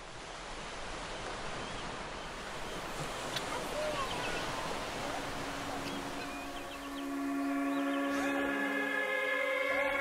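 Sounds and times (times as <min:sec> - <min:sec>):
surf: 0:00.0 - 0:10.0
faint wavering glides: 0:05.0 - 0:10.0.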